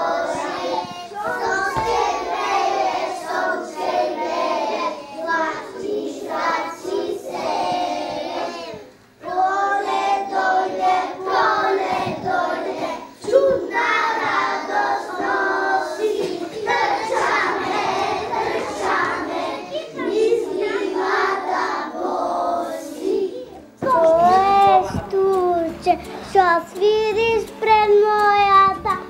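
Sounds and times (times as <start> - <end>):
young children singing: 0.0 - 29.0.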